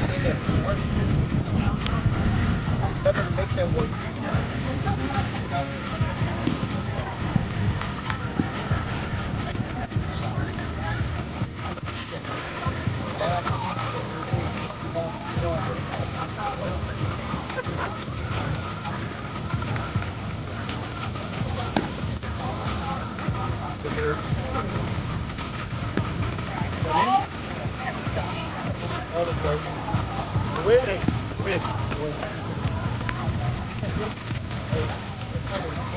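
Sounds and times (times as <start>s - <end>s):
background music: 0.0s - 35.9s.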